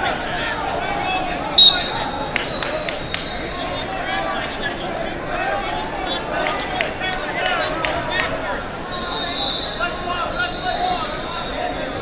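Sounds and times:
chatter in a large hall: 0.0 - 12.0
referee's whistle: 1.6 - 3.5, 8.9 - 11.5.

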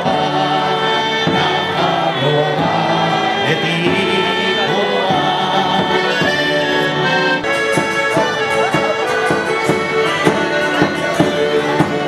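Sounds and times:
group singing folk song: 0.0 - 12.0
strummed acoustic guitar: 0.0 - 12.0.

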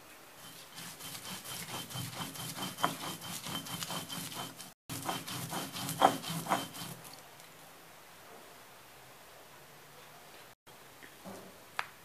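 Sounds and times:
stone scraping on stone: 0.4 - 7.2.

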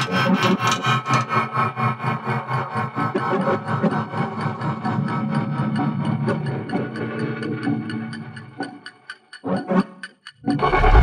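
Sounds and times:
steady low drone: 10.4 - 11.0.

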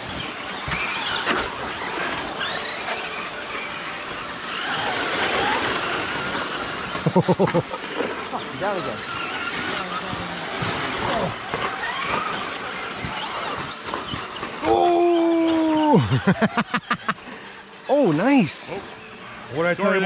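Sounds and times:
rc truck motors whining: 0.0 - 20.0
person laughing: 7.0 - 8.1, 15.8 - 17.2.

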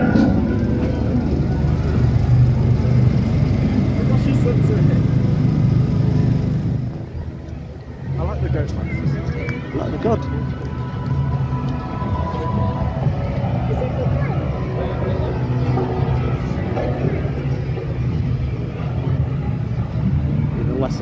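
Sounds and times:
loud low rumble: 0.0 - 7.3
faint voices of people: 0.0 - 21.0.

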